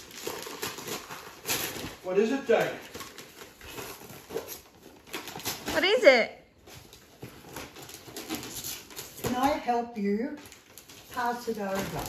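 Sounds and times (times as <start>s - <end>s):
paper rustling and crinkling: 0.0s - 6.0s, 6.6s - 9.7s, 10.3s - 12.0s.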